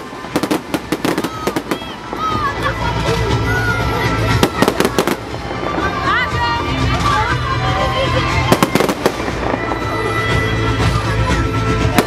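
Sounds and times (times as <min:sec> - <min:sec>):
fireworks cracking: 0:00.0 - 0:11.1, 0:11.7 - 0:12.0
background music: 0:00.0 - 0:12.0.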